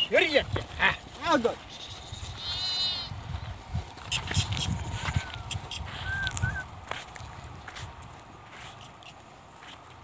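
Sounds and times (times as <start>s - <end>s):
wind rumble on microphone: 0.3s - 1.2s, 1.8s - 8.5s.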